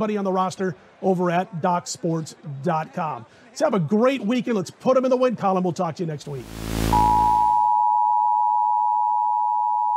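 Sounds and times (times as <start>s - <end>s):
steady test tone: 6.3s - 7.8s.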